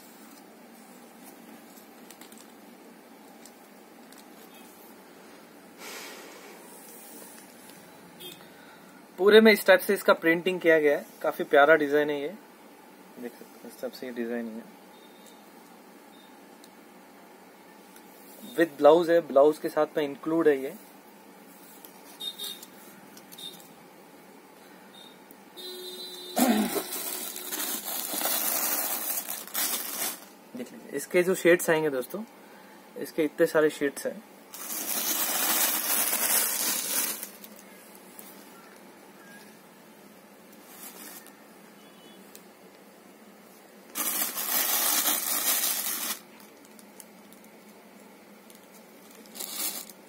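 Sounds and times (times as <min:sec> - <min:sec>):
fabric rustling: 0:40.6 - 0:41.4.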